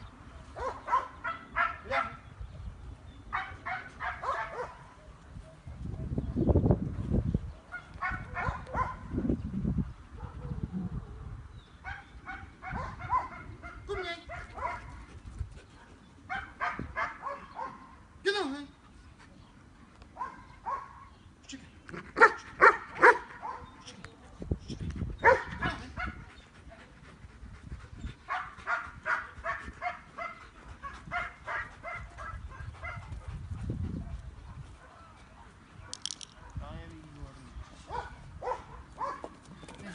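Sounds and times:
dog barking: 0:00.6 - 0:02.2, 0:03.3 - 0:06.1, 0:07.7 - 0:09.1, 0:10.2 - 0:10.6, 0:11.9 - 0:14.9, 0:16.3 - 0:17.8, 0:20.2 - 0:21.1, 0:22.2 - 0:23.7, 0:25.2 - 0:26.2, 0:28.3 - 0:30.4, 0:31.1 - 0:33.0, 0:37.9 - 0:39.3.

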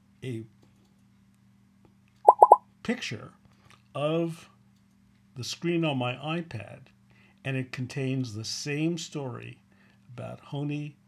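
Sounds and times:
quick pitched pops: 0:02.3 - 0:02.6.

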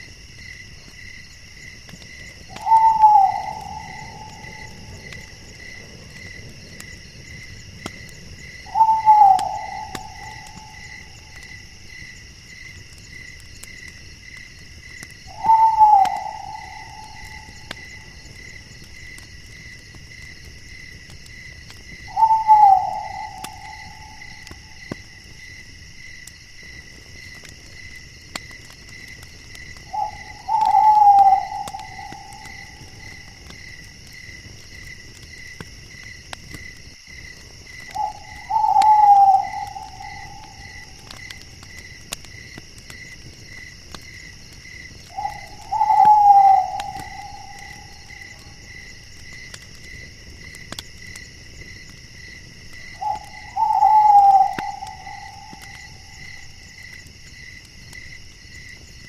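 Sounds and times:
night insects chorus: 0:00.0 - 0:59.0
owl calling: 0:02.5 - 0:05.0, 0:08.6 - 0:11.3, 0:15.3 - 0:18.2, 0:22.1 - 0:24.8, 0:29.9 - 0:33.4, 0:37.9 - 0:41.1, 0:45.1 - 0:48.7, 0:52.9 - 0:56.3.

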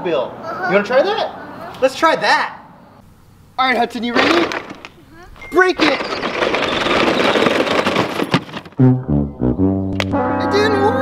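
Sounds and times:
toy car crunching over gravel: 0:04.0 - 0:08.8
toy car knocking box: 0:05.9 - 0:08.8
sad trombone sound effect: 0:08.8 - 0:11.0.

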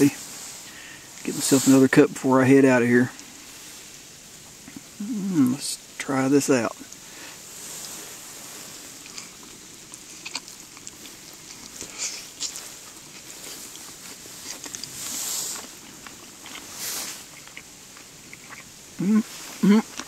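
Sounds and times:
person chewing crispy bacon: 0:08.7 - 0:20.0.

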